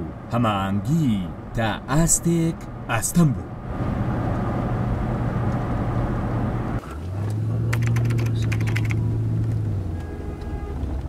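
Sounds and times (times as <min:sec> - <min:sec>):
car engine and road drone: 0:00.0 - 0:11.0
quick run of clicks: 0:07.7 - 0:09.6.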